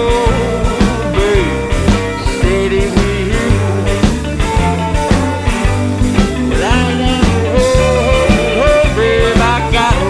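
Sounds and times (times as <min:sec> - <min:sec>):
bass line: 0:00.0 - 0:10.0
drums: 0:00.0 - 0:10.0
lead instrument bending notes: 0:00.0 - 0:10.0.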